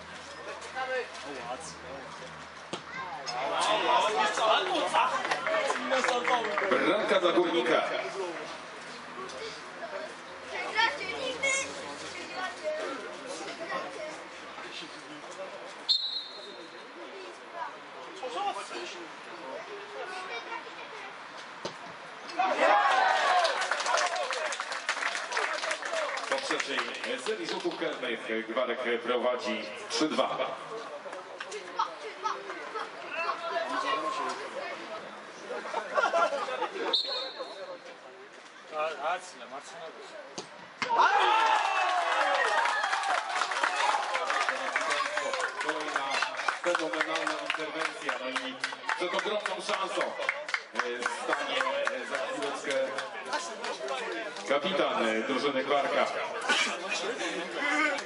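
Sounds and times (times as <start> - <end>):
referee's whistle blast: 15.9 - 16.6, 36.9 - 37.5
spectators shouting and cheering: 22.3 - 24.6, 40.8 - 46.8.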